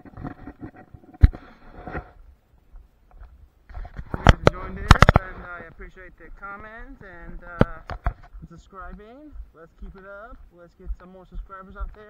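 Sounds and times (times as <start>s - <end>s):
camera knocking against clothing: 3.1s - 5.8s, 7.0s - 12.0s
man talking: 4.2s - 12.0s.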